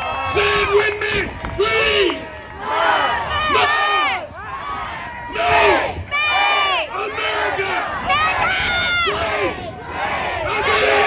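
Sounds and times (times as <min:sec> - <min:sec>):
crowd shouting together: 0:01.6 - 0:11.0.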